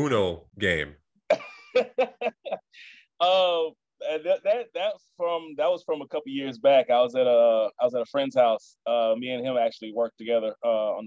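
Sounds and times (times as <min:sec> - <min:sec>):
man chuckling: 0:01.3 - 0:03.6.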